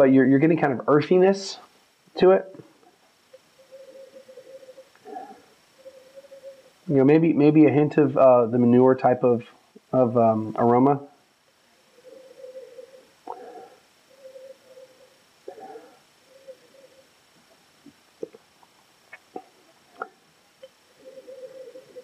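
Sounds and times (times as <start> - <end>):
hollow steady hum: 0.0 - 22.0.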